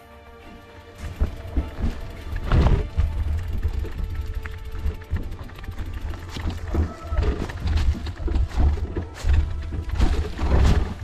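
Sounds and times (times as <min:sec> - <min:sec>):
soft background music: 0:00.0 - 0:11.0
mountain bike rattling and knocking: 0:00.9 - 0:11.0.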